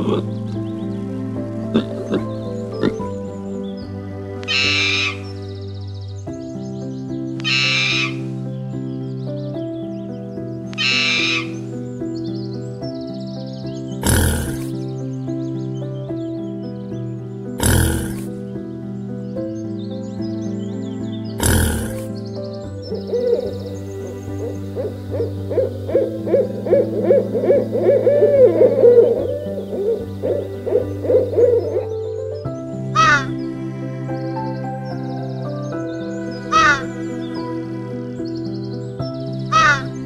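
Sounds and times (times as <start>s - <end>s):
soft piano music: 0.0s - 40.0s
owl hooting: 4.5s - 5.2s, 7.4s - 8.3s, 10.8s - 11.6s, 14.0s - 14.8s, 17.6s - 18.4s, 21.4s - 22.2s, 23.0s - 32.0s, 33.0s - 33.3s, 36.5s - 36.9s, 39.5s - 39.9s.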